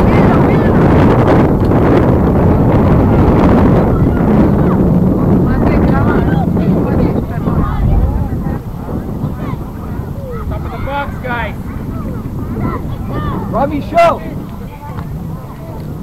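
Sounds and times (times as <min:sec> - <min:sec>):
wind buffeting microphone: 0:00.0 - 0:16.0
distant shouting voices: 0:03.6 - 0:16.0.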